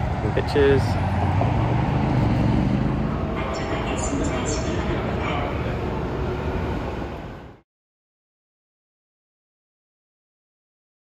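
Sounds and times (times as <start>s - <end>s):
low rumble of passing vehicles: 0.0s - 7.6s.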